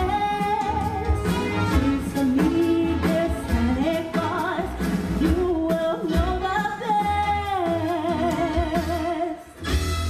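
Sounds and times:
woman singing with vibrato: 0.0s - 9.6s
live stage band: 0.0s - 10.0s.

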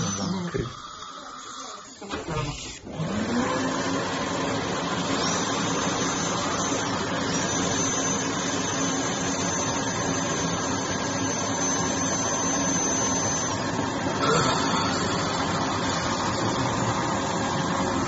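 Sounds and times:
dental drill whine: 0.0s - 18.0s.

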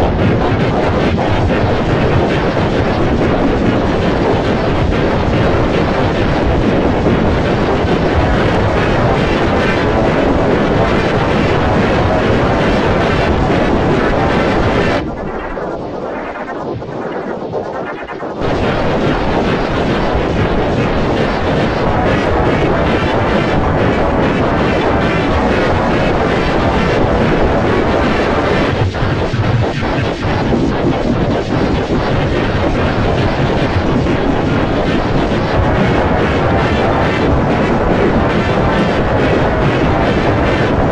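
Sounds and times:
heavily distorted remix audio: 0.0s - 40.9s.

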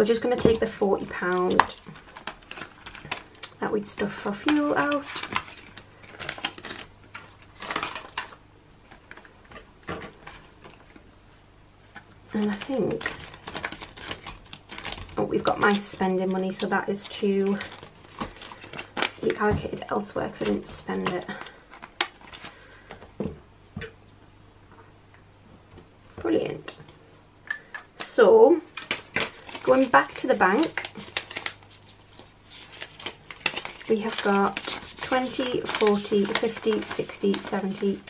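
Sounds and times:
plastic envelopes rustling: 0.0s - 11.2s, 11.8s - 23.3s, 28.7s - 38.0s.

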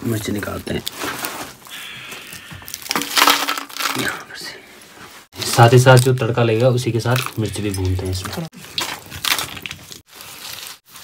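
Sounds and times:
plastic sack rustling: 0.0s - 1.8s, 2.7s - 4.2s, 8.6s - 11.0s.

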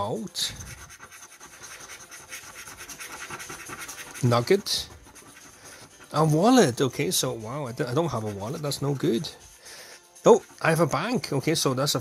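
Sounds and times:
coin scratching a scratchcard: 0.0s - 12.0s.

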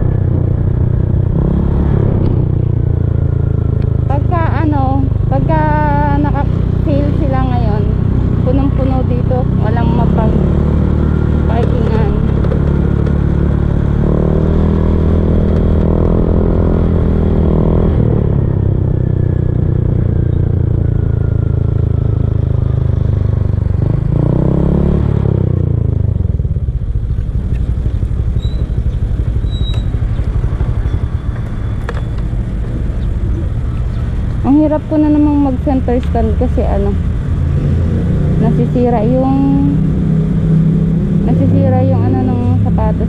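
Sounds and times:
scooter engine running: 0.0s - 14.0s, 25.5s - 43.0s.

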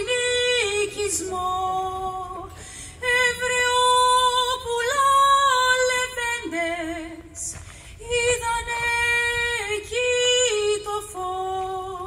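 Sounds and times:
woman singing unaccompanied: 0.0s - 12.0s.

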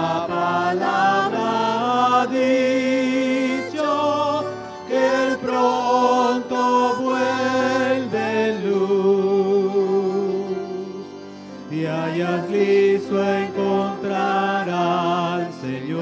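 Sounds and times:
woman singing a hymn: 0.0s - 11.1s, 11.7s - 16.0s
keyboard accompaniment: 0.0s - 16.0s.

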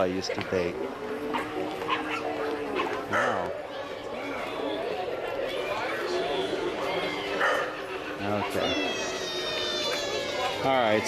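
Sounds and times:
many people talking: 0.0s - 11.0s.

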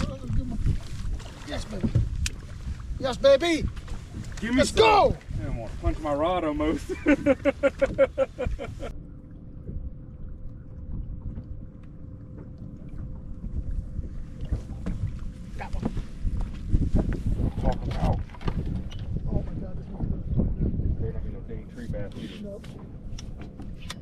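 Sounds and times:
wind rumbling on microphone: 0.0s - 24.0s
man laughing: 6.7s - 8.9s
faint steady hum: 6.7s - 17.1s.

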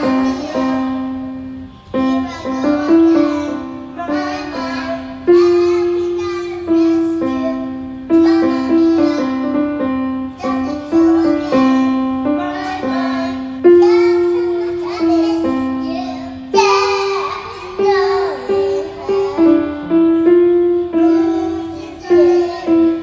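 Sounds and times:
child singing: 0.0s - 23.0s
electronic keyboard piano chords: 0.0s - 23.0s.

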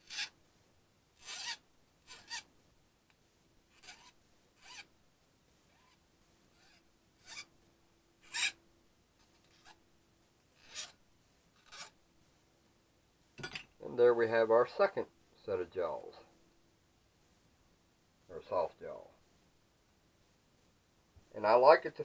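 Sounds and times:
hand file rasping on sheet metal: 0.0s - 0.4s, 1.2s - 2.4s, 3.7s - 4.9s, 8.2s - 8.6s, 10.6s - 11.0s.

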